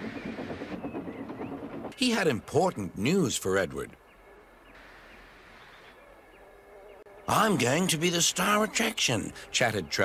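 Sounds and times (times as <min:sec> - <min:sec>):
steam locomotive puffing: 0:00.0 - 0:02.0
wheels clattering on rails: 0:00.0 - 0:03.2.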